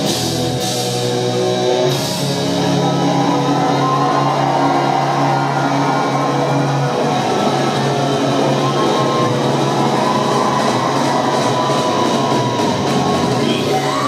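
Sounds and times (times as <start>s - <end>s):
hard rock band playing live: 0.0s - 14.0s.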